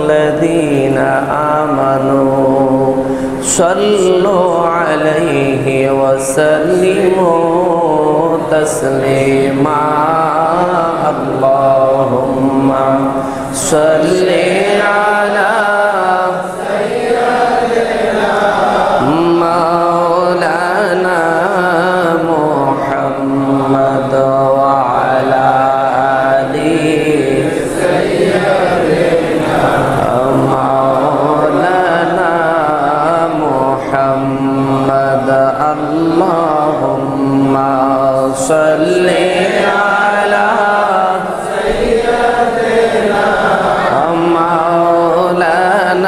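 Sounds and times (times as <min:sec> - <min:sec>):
man chanting into a microphone: 0:00.0 - 0:46.0.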